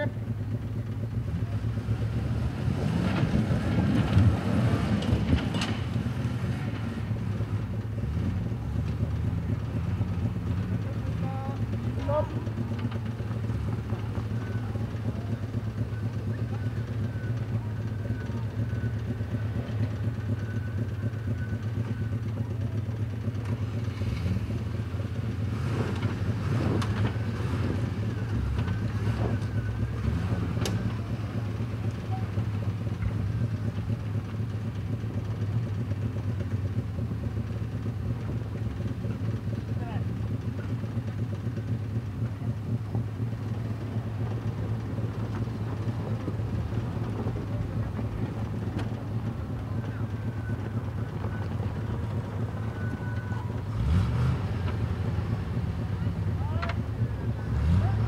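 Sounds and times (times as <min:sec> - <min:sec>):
off-road vehicle engine running: 0:00.0 - 0:58.0
voices calling out: 0:10.5 - 0:25.4, 0:26.0 - 0:58.0.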